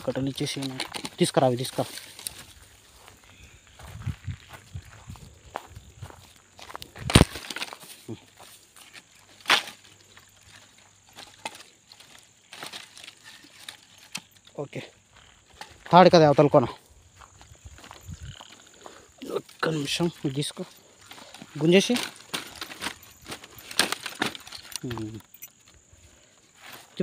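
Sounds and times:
firewood sticks clicking and knocking: 0:00.0 - 0:02.6, 0:06.8 - 0:14.7, 0:15.4 - 0:16.3, 0:19.2 - 0:25.8
footsteps on twigs and dry grass: 0:00.0 - 0:27.0.

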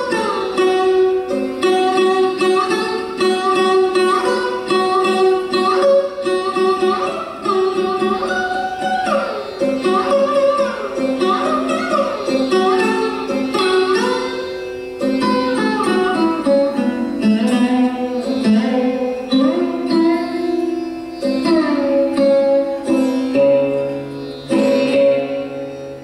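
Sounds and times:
sarod plucked notes: 0:00.0 - 0:26.0.

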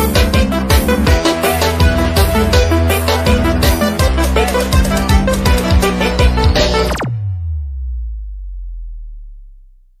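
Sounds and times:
deep electronic bass note: 0:04.8 - 0:10.0.

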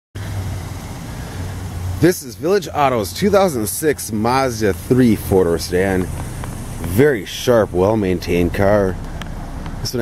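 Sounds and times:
car engine idling: 0:00.2 - 0:10.0.

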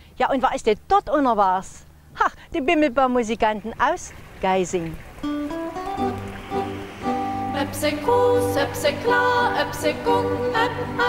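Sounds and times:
plucked strings folk music: 0:05.2 - 0:11.0.

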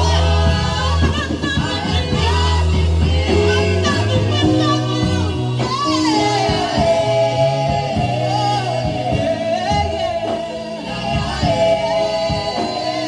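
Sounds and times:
live instrumental accompaniment: 0:00.0 - 0:13.0
woman singing into microphone: 0:00.0 - 0:13.0.

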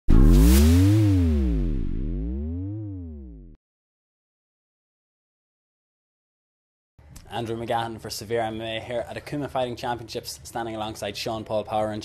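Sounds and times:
low electronic hit: 0:00.0 - 0:03.6.

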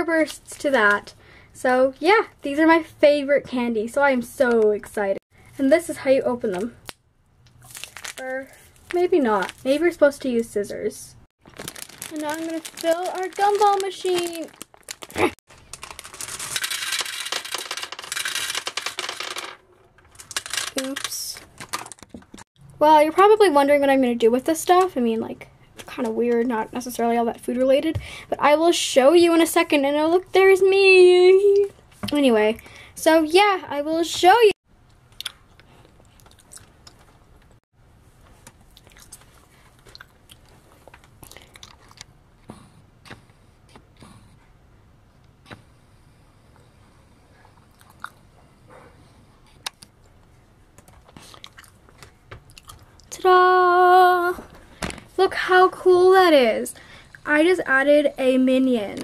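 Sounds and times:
gumballs clattering into plastic: 0:11.4 - 0:22.4.

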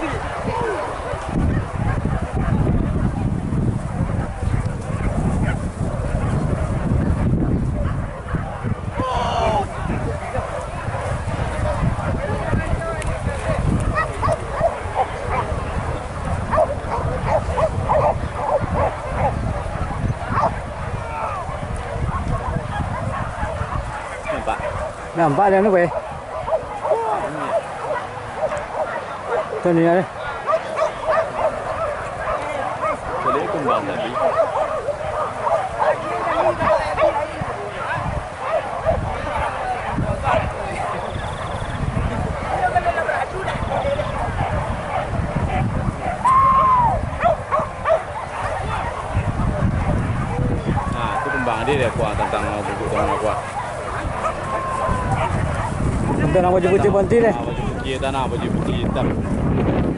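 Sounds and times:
dogs barking and yelping: 0:03.9 - 0:12.3, 0:13.4 - 0:57.0.

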